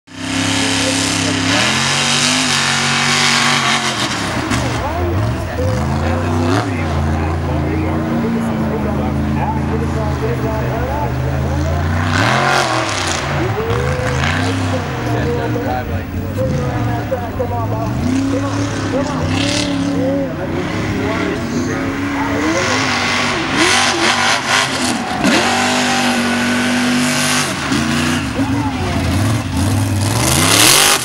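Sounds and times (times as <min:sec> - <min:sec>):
truck engine revving: 0:00.1 - 0:31.0.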